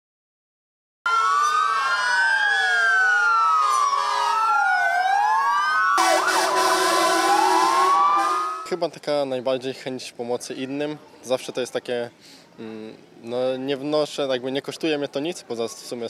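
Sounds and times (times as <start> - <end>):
fire engine sirens wailing: 1.1 - 8.8.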